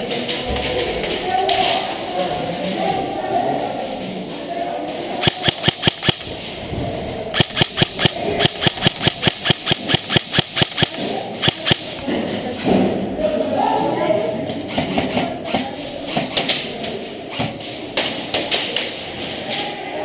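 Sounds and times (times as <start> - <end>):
rapid gun shots: 5.2 - 6.4, 7.3 - 12.0
muffled shouting: 13.2 - 14.5.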